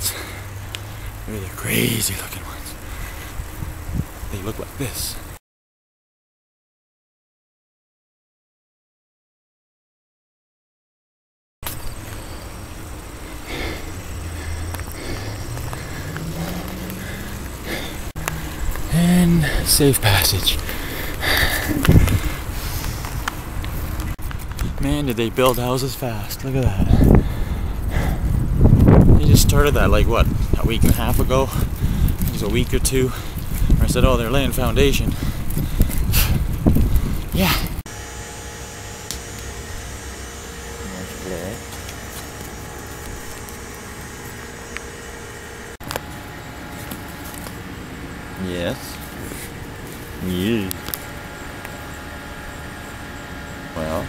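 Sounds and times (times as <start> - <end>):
bicycle rolling on pavement: 0.0 - 5.4, 11.7 - 37.8, 40.9 - 52.9
wind rumble: 0.0 - 5.4, 11.8 - 37.8
faint hum: 11.6 - 54.0
motor vehicle engine rising: 11.6 - 54.0.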